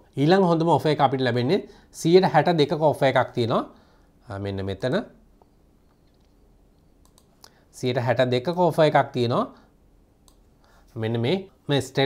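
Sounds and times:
person speaking: 0:00.0 - 0:05.2, 0:07.4 - 0:09.6, 0:10.8 - 0:12.0
faint sharp clicks: 0:07.0 - 0:07.6, 0:10.2 - 0:10.5.

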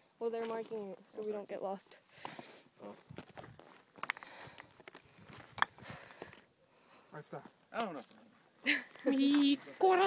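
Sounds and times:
footsteps crunching on gravel: 0:02.8 - 0:04.2.

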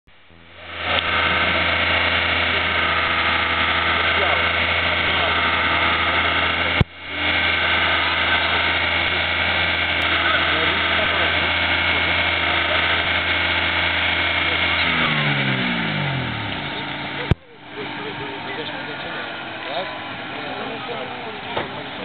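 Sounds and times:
car engines idling: 0:00.1 - 0:22.0
people talking: 0:00.7 - 0:22.0.

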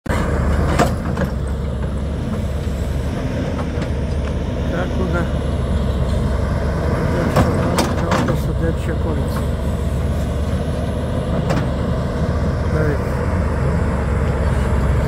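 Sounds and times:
construction machinery engine rumble: 0:00.0 - 0:15.0.

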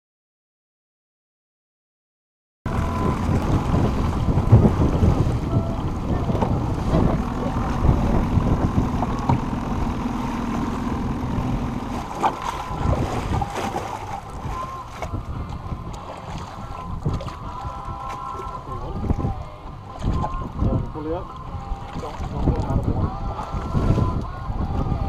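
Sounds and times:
steady low hum: 0:02.7 - 0:25.0
water splashing against boat: 0:02.7 - 0:25.0
wind buffeting microphone: 0:02.7 - 0:25.0.

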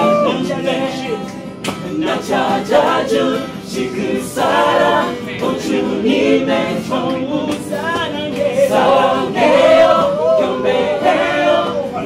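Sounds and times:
group singing gospel song: 0:00.0 - 0:12.0.

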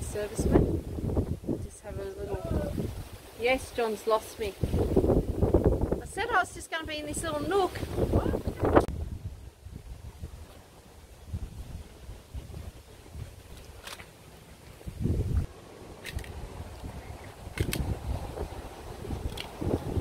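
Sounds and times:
wind buffeting microphone: 0:00.0 - 0:14.0, 0:14.8 - 0:20.0.

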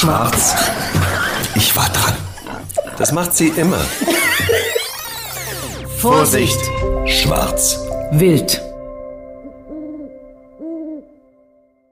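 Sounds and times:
hoot-like pitched notes: 0:04.0 - 0:07.2, 0:08.8 - 0:11.4
held electronic chord: 0:04.0 - 0:11.8.

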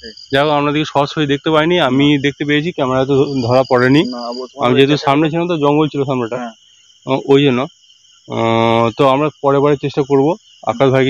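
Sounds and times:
man speaking: 0:00.0 - 0:07.7, 0:08.3 - 0:11.0
crickets trilling: 0:00.0 - 0:11.0.

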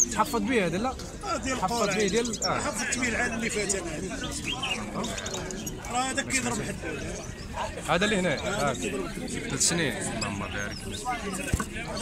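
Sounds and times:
people talking: 0:00.0 - 0:12.0
songbirds chirping: 0:00.0 - 0:12.0.

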